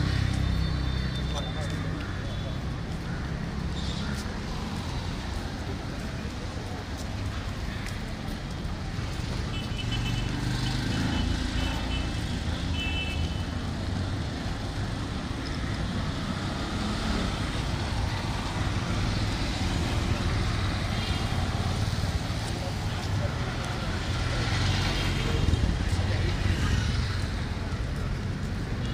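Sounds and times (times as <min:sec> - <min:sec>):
road traffic: 0:00.0 - 0:28.9.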